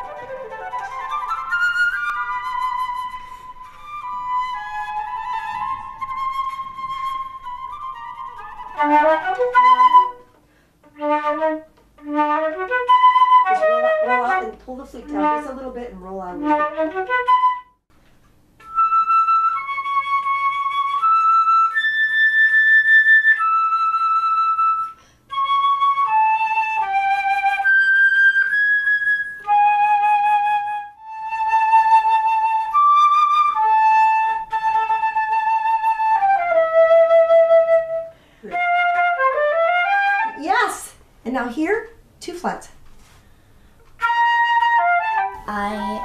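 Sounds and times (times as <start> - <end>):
flute playing slow melody: 0.0 - 15.6, 16.4 - 17.8, 18.6 - 40.4, 43.9 - 46.0
flute player breathing: 2.9 - 4.2, 10.2 - 10.9, 24.8 - 25.4, 37.9 - 38.8, 43.0 - 44.0.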